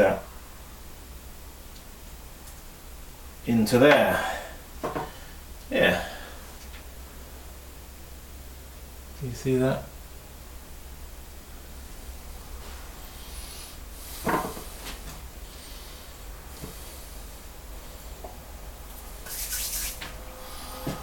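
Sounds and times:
steady low hum: 0.0s - 21.0s
brief scrape: 19.2s - 21.0s.

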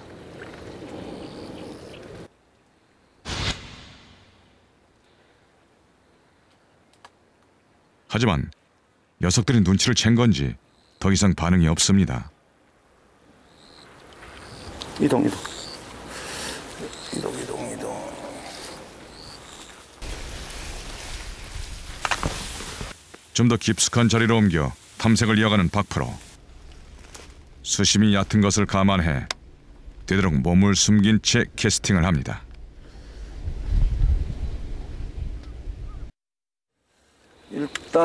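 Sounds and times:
grass and reeds rustling: 12.6s - 28.8s, 36.8s - 38.0s
low wind rumble on microphone: 32.4s - 36.1s.

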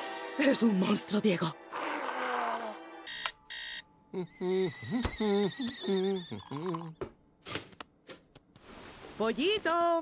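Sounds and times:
alarm clock beeps: 3.1s - 3.8s
person humming wordless tune: 4.1s - 7.0s.

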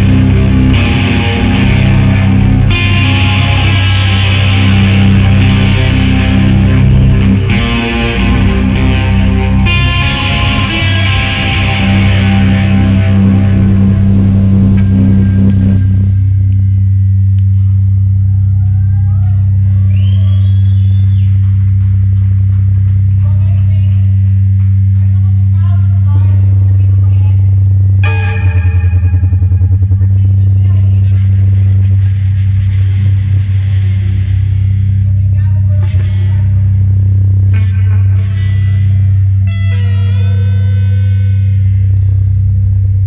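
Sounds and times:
harsh noise layer: 0.0s - 19.9s, 20.5s - 43.0s
loud low electronic drone: 0.0s - 43.0s.

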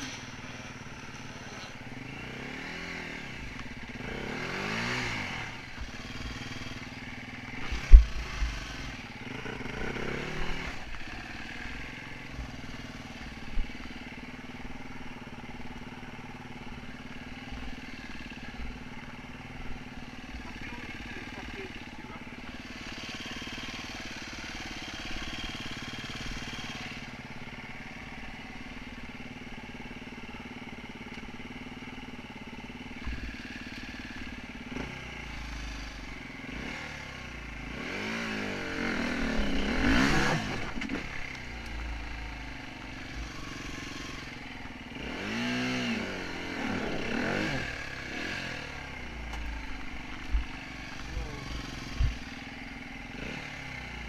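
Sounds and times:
dirt bike engine idling and revving: 0.0s - 54.0s.

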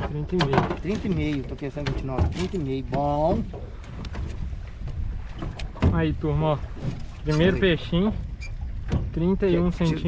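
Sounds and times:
man talking: 0.0s - 3.5s, 7.2s - 8.2s, 9.2s - 10.0s
wind buffeting microphone: 0.0s - 10.0s.

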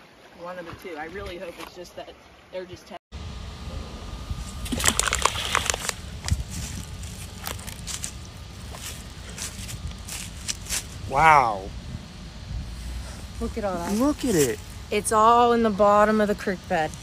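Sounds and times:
water sloshing: 4.4s - 9.6s
rock splashing into water: 4.6s - 6.0s.

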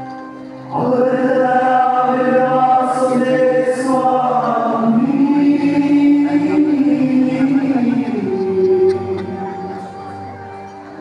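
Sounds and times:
choir singing a hymn: 0.7s - 11.0s.

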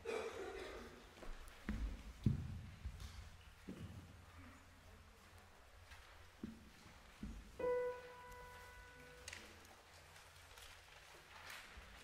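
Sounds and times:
held piano note: 7.6s - 9.4s.

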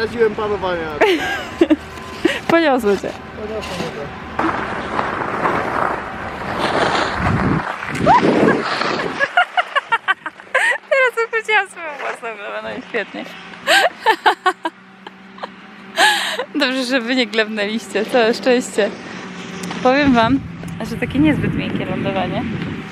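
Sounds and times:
woman laughing and squealing: 1.0s - 2.6s, 7.9s - 11.3s, 13.6s - 16.6s
wind on microphone: 4.4s - 10.2s, 19.8s - 22.9s
skis sliding on snow: 4.8s - 9.7s.

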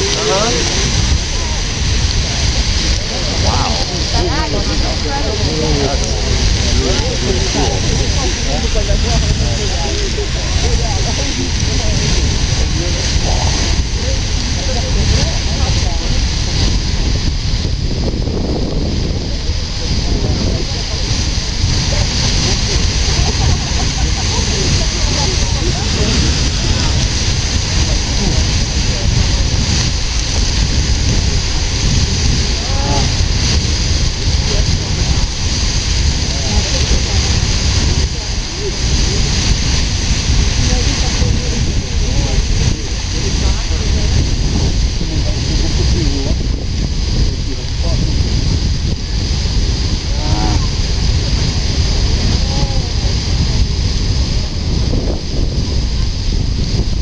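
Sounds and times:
voices murmuring: 0.0s - 16.7s, 19.2s - 46.5s, 50.0s - 51.5s
geyser water jet rushing: 0.0s - 57.0s.

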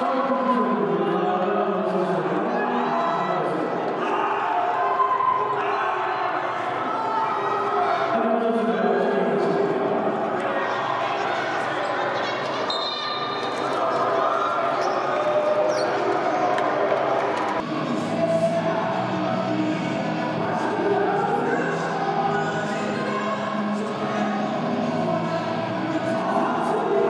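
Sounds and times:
crowd voices and chatter: 0.0s - 27.0s.

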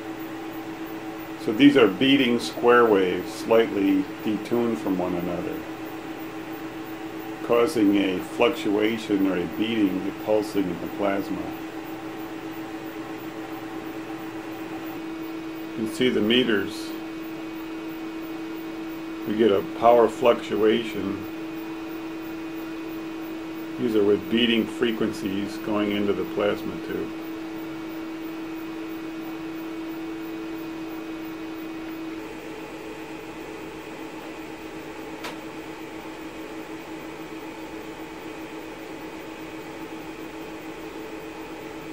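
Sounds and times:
electrical hum with tone: 0.0s - 41.9s
rapidly pulsing buzz: 0.0s - 41.9s
sharp click: 35.2s - 35.4s.

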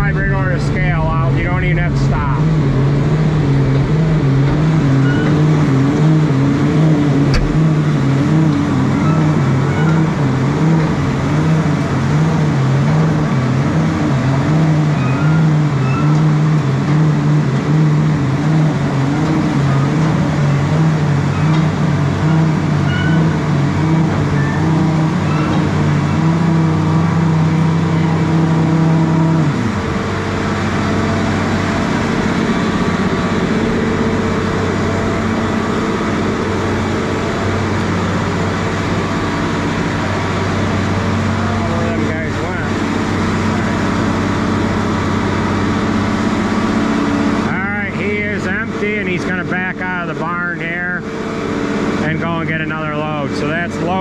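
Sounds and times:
machine engine and spreader running: 0.0s - 54.0s.

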